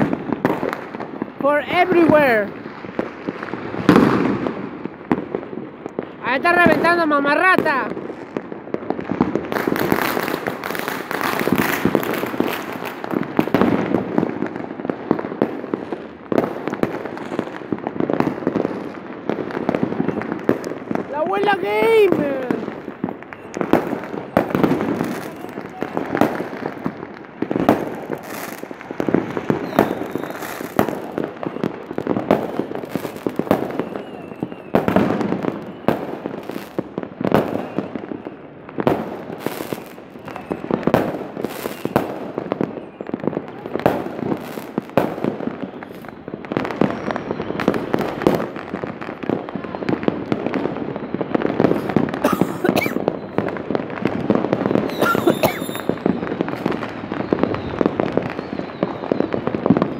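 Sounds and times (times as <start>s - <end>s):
firecrackers cracking: 0.0s - 59.9s.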